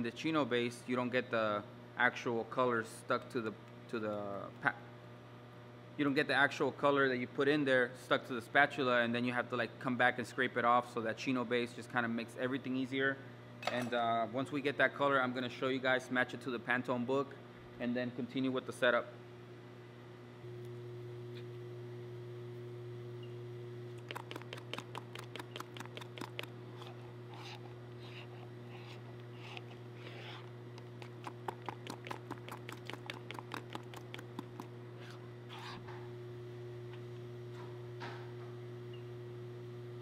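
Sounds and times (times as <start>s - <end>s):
low machine hum: 0.0s - 40.0s
spatula stirring thick ink: 24.0s - 35.8s.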